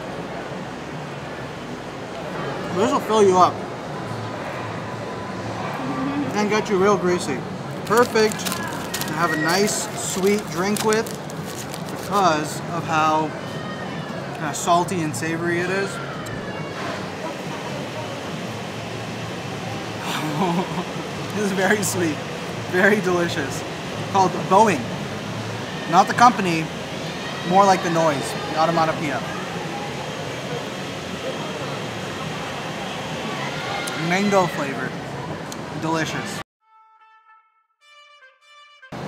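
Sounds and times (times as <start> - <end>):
steady background noise: 0.0 - 36.4
faint chatter of voices: 3.9 - 22.2.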